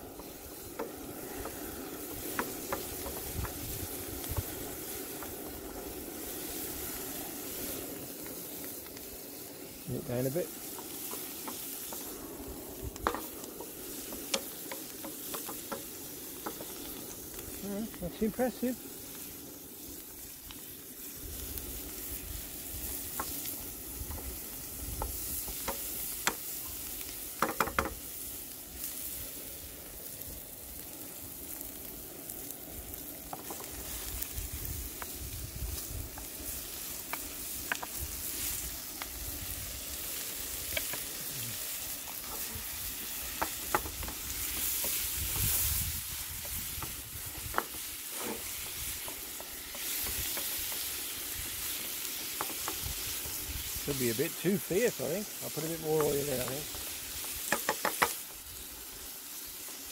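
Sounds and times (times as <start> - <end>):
food sizzling in a frying pan: 0.0 - 59.9
propane burner: 0.0 - 59.9
utensil scraping a pan: 46.4 - 51.0.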